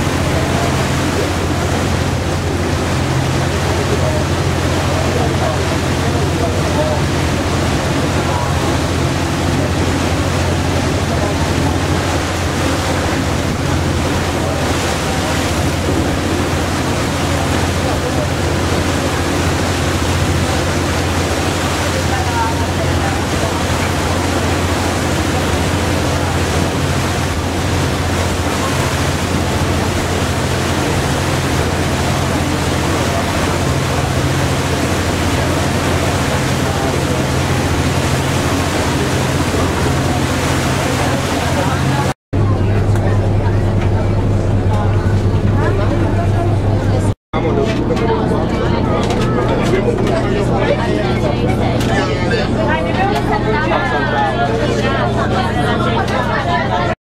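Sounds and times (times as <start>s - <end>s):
ferry engine low hum: 0.0s - 57.0s
passengers talking: 0.0s - 57.0s
wind and water rushing: 0.0s - 57.0s.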